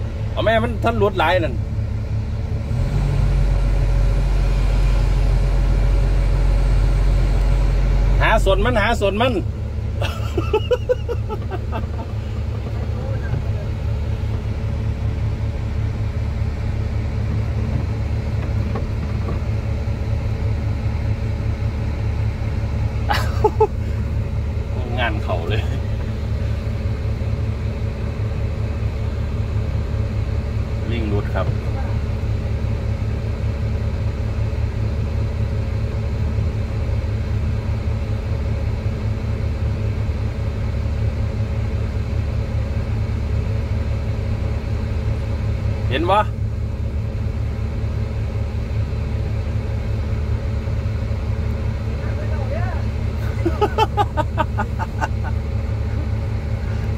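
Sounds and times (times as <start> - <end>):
excavator diesel engine rumbling: 0.0 - 56.9.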